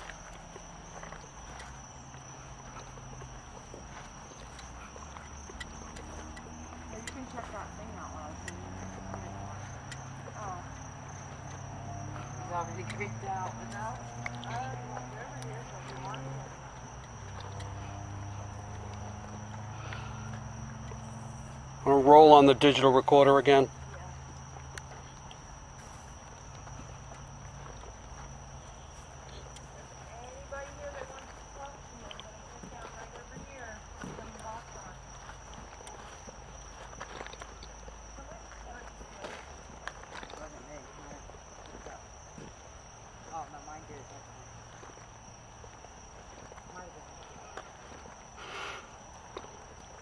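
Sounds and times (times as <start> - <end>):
crickets chirping: 0.0 - 50.0
footsteps: 0.0 - 50.0.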